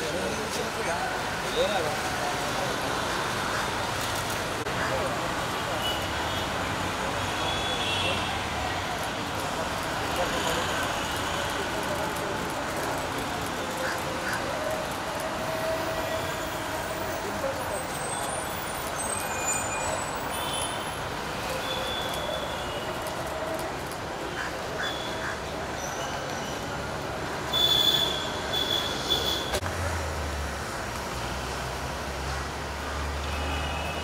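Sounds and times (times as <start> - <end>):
road traffic noise: 0.0 - 34.0.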